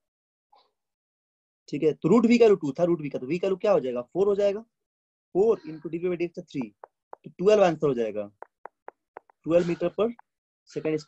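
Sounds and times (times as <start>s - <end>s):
stylus tapping on glass screen: 6.6s - 7.5s, 8.4s - 10.4s.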